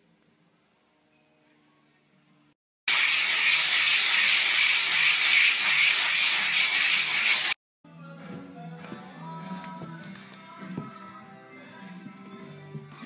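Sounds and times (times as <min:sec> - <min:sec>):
loud steady hiss: 0:02.9 - 0:07.6.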